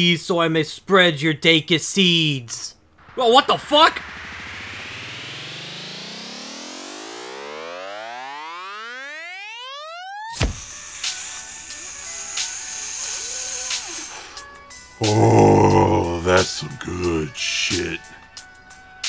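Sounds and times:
synthesised rising sweep: 2.9 - 10.4
sudden hit: 3.0 - 6.4
music: 5.8 - 19.0.

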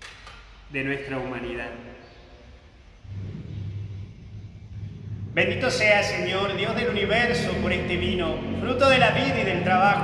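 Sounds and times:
low steady rumble: 2.5 - 10.0.

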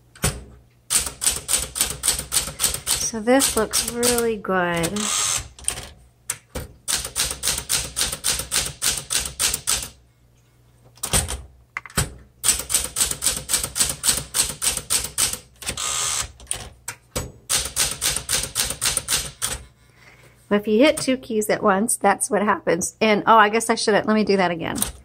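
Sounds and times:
typewriter keystroke clacks: 0.2 - 5.0, 6.9 - 10.0, 11.0 - 15.8, 17.5 - 19.6
typewriter carriage return rasp: 0.2 - 6.0, 6.9 - 10.0, 12.4 - 16.8, 17.5 - 19.6.

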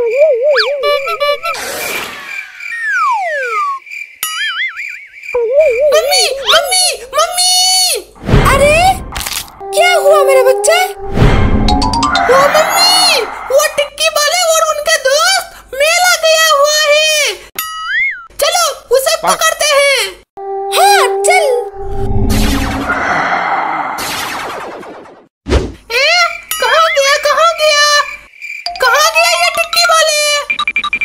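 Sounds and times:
whistle tone gliding down: 2.7 - 3.8, 11.7 - 13.9
high-pitched cartoon voice: 5.4 - 9.0, 9.6 - 11.0, 12.1 - 17.3, 20.7 - 21.7, 28.7 - 30.5
wobbling warbly tone: 9.6 - 14.0.

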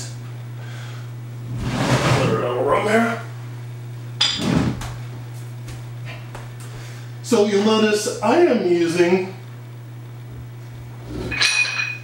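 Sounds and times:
free weights clinking: 11.3 - 12.0.

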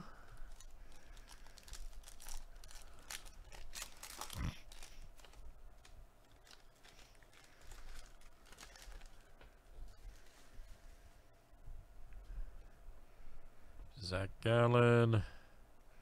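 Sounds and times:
foil pack tearing and crinkling: 0.4 - 9.3.

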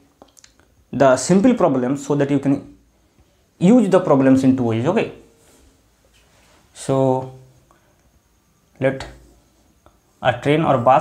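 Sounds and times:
man speaking: 0.9 - 2.8, 3.6 - 5.4, 6.8 - 7.5, 8.8 - 9.3, 10.2 - 11.0.

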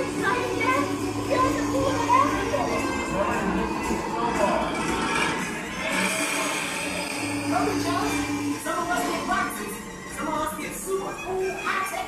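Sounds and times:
steady low hum: 0.0 - 10.4
animated voices: 0.0 - 12.0
music: 0.0 - 12.0.

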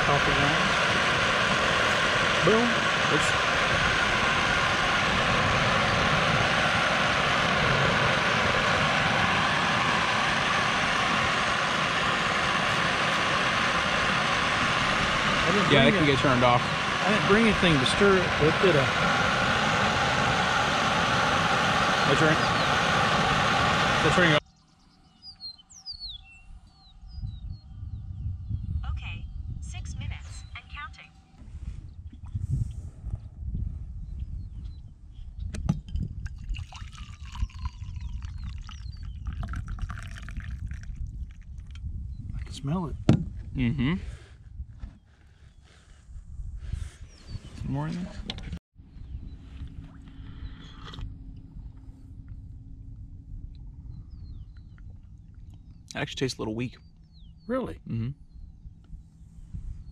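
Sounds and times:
low rumble: 0.0 - 59.9
birds chirping: 9.4 - 20.1, 21.6 - 32.1, 36.8 - 40.8, 44.8 - 46.1, 46.8 - 51.0, 53.6 - 59.9
high falling bird chirps: 24.4 - 29.6, 36.8 - 40.4.

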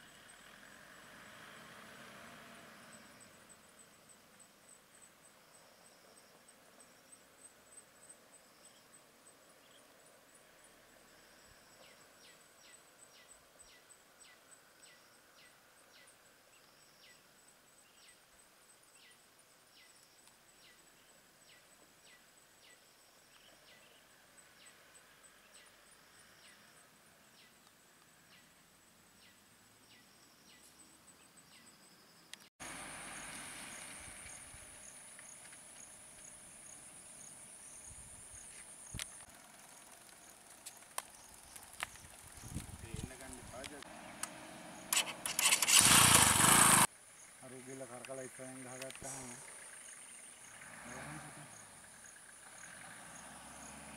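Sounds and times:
high insect drone: 32.6 - 53.9.

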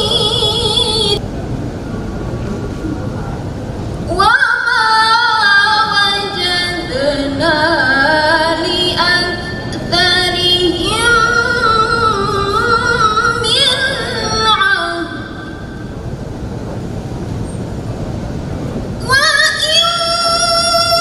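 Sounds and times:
woman reciting melodically: 0.0 - 1.2, 4.1 - 15.8, 19.0 - 21.0
steady background noise: 0.0 - 21.0.

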